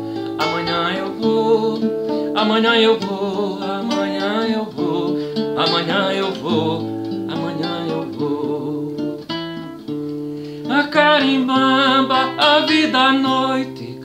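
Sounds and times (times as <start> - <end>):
acoustic guitar plucking melody: 0.0 - 14.0.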